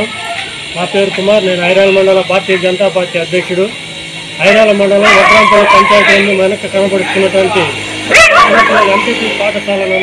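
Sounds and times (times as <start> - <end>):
man talking: 0.7 - 3.8, 4.4 - 7.8, 8.4 - 10.0
sharp high rising and falling call: 4.3 - 10.0.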